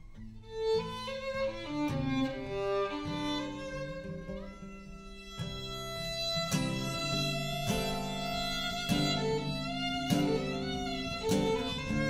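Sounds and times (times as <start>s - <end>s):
acoustic guitar chords: 0.0s - 12.0s
violin slow melody: 0.2s - 12.0s.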